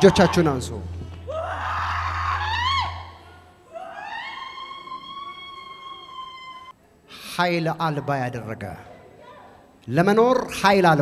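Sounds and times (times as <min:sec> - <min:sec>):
woman screaming: 0:01.2 - 0:06.7.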